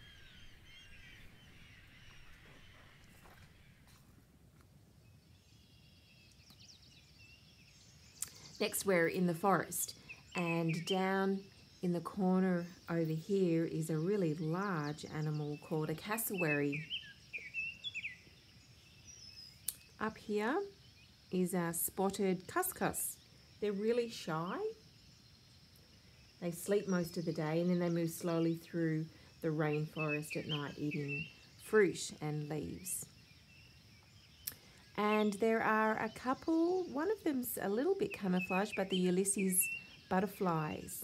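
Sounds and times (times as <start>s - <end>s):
faint bird chirps: 0.0s - 4.2s, 5.0s - 41.0s.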